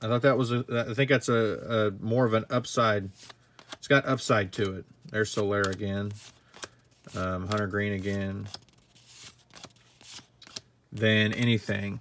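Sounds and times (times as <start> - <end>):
cardboard cards sliding: 3.1 - 3.8, 4.6 - 11.8.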